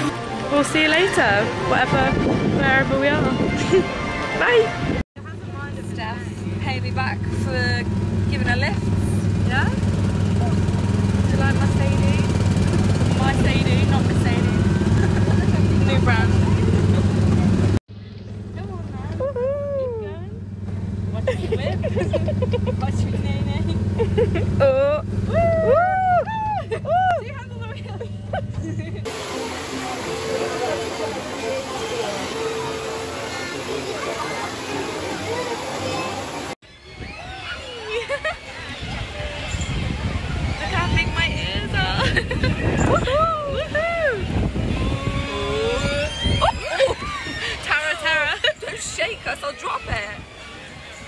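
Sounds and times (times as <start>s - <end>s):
ride car engine humming: 5.2s - 36.6s, 38.3s - 51.0s.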